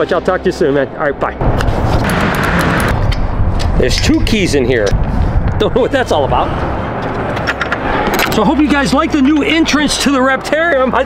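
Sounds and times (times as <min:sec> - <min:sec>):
man speaking: 0:00.0 - 0:01.4, 0:03.8 - 0:05.0, 0:05.6 - 0:06.6, 0:08.3 - 0:11.0
wind buffeting microphone: 0:01.4 - 0:10.1.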